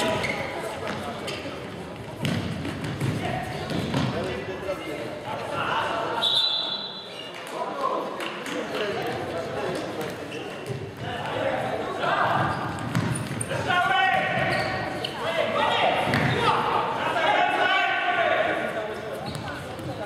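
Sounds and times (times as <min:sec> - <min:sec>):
players shouting: 0:13.5 - 0:18.7.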